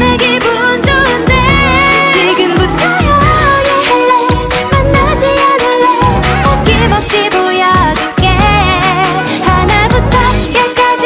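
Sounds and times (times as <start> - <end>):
pop backing track: 0.0 - 11.0
woman singing pop song: 0.0 - 11.0.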